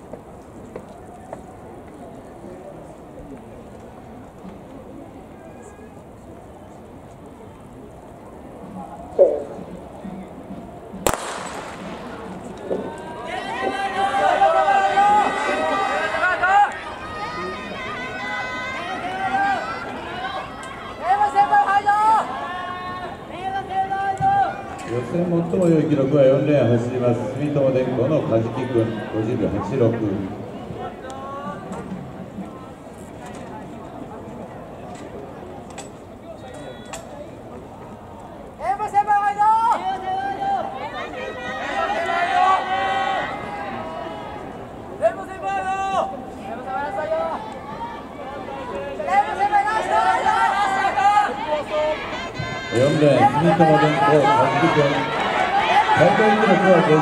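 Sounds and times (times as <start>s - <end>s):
faint distant voices and chatter: 0.0s - 57.0s
starting pistol crack: 11.0s - 12.6s
spectators shouting and cheering: 11.5s - 33.6s, 38.1s - 57.0s.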